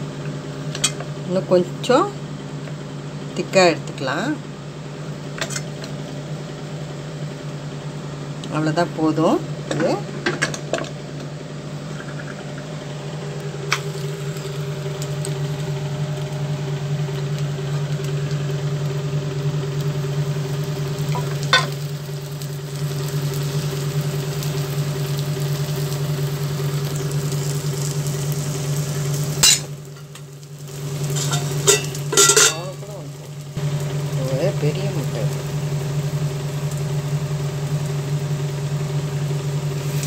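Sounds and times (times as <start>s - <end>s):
food sizzling on a hot griddle: 12.9s - 40.0s.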